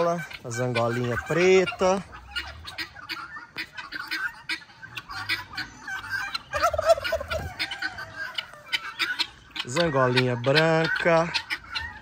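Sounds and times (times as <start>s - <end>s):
turkey gobbling: 0.0s - 12.0s.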